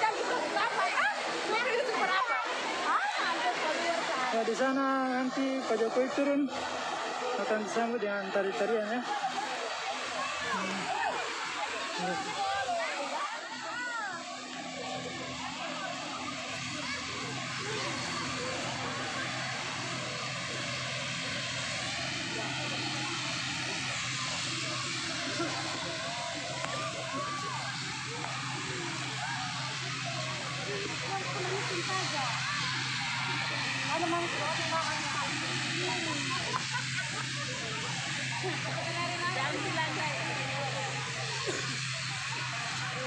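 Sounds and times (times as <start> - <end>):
aircraft engines humming: 0.0 - 43.0
crowd chatter: 0.0 - 43.0.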